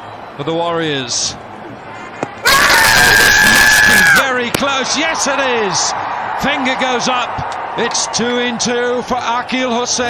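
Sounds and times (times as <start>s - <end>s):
crowd noise: 0.0s - 10.0s
loud high shout: 2.4s - 8.5s.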